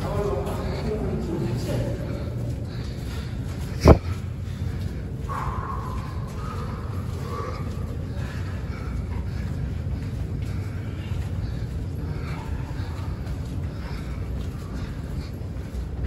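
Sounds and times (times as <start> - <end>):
distant voices: 0.0 - 16.0
faint footfalls: 0.0 - 16.0
low rumble in a tunnel: 0.0 - 16.0.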